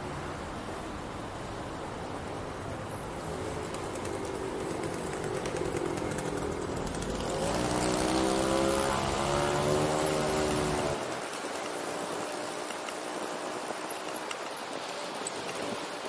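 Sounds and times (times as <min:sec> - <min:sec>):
traffic noise: 0:00.0 - 0:16.0
vehicle engine accelerating: 0:03.2 - 0:11.3.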